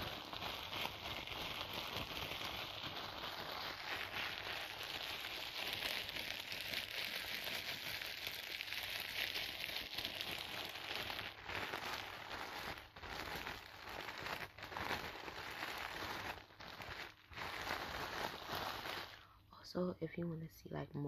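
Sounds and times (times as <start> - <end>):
plastic wrapping crinkling: 0.0 - 19.5.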